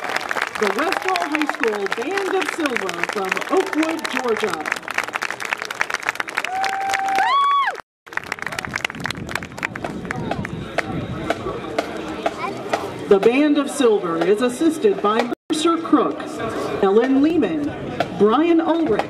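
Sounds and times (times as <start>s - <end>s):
crowd applauding: 0.0s - 10.6s
long held cheer rising in pitch: 6.3s - 7.8s
crowd cheering and shouting: 6.4s - 7.8s.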